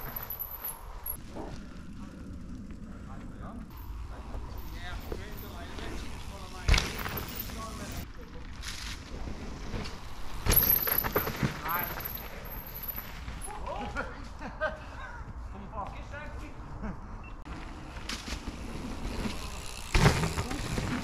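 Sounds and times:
mountain bike on dirt trail: 0.0s - 14.9s, 17.5s - 21.0s.

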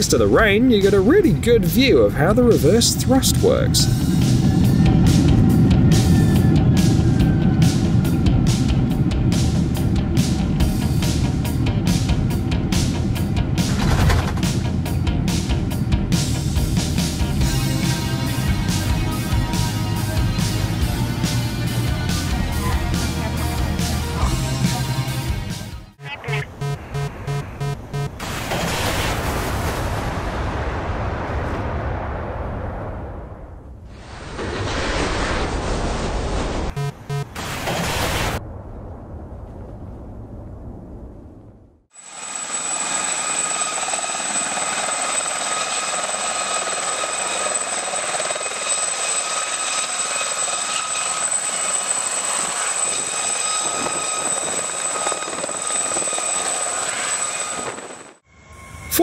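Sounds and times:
helicopter turbine whine: 0.0s - 25.2s, 42.0s - 59.0s
helicopter rotor noise: 42.0s - 58.2s.

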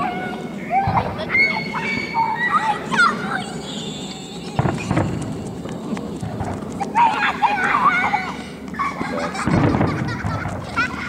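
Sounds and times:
aerial fireworks bursting: 0.0s - 11.0s
low boom: 4.6s - 6.9s, 9.4s - 10.8s.

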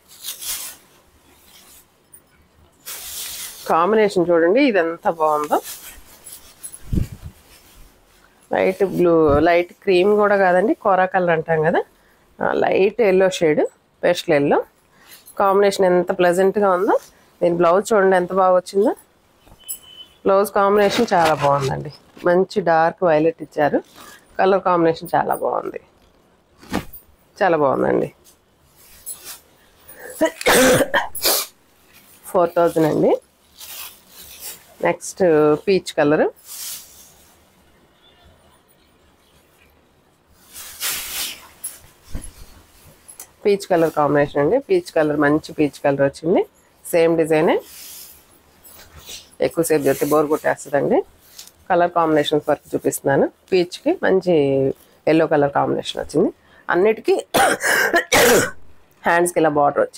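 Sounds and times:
silk fabric rustling: 0.0s - 11.9s, 15.0s - 38.3s, 40.3s - 56.0s
woman coughing: 30.0s - 31.4s, 57.3s - 58.7s.

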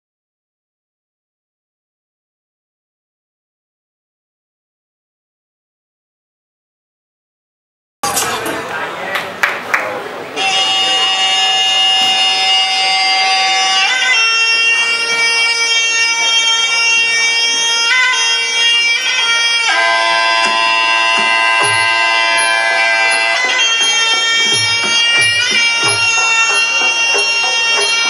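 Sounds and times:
reedy oboe long notes: 10.4s - 28.0s
low drum beats: 20.4s - 22.5s.

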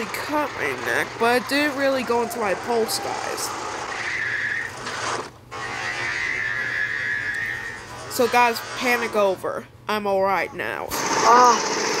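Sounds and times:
go-kart engine whine: 0.0s - 9.0s, 11.0s - 12.0s.

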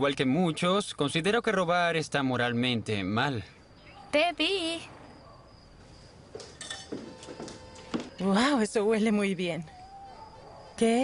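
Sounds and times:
kitchen dishes clinking: 6.6s - 7.2s.

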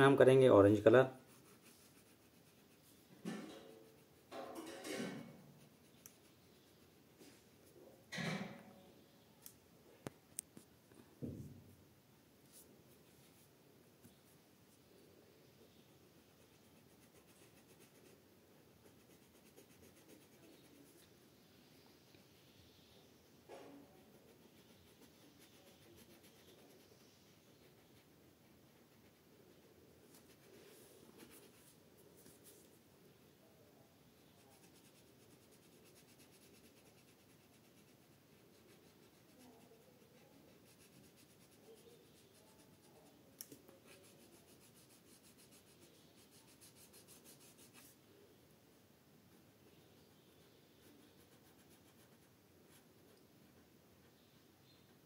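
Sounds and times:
crayon scratching on paper: 1.2s - 3.0s, 3.8s - 4.4s, 5.6s - 6.9s, 16.2s - 18.2s, 18.8s - 21.1s, 24.0s - 32.7s, 34.3s - 48.0s, 49.4s - 54.8s.

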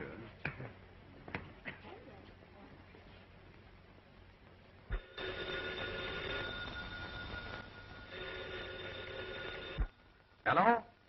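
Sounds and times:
telephone bell ringing: 4.9s - 10.0s.

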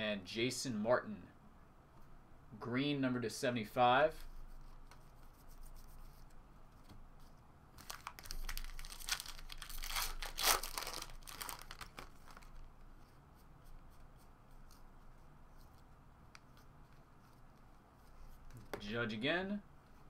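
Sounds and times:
foil wrapper tearing and crinkling: 7.8s - 12.6s.

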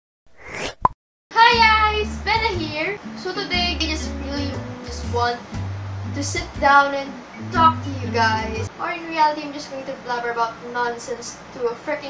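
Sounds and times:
low steady hum: 1.6s - 9.0s
woman singing long high vowel: 3.4s - 5.2s.

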